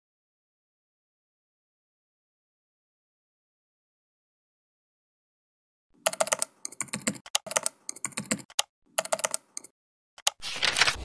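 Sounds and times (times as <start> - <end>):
keyboard key clicks: 6.1 - 10.4.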